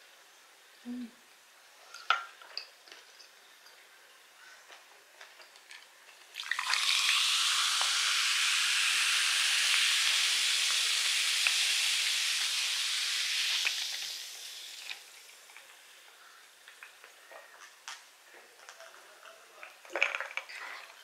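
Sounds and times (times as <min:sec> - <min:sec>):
soda fizzing as poured over ice: 0:06.3 - 0:16.0.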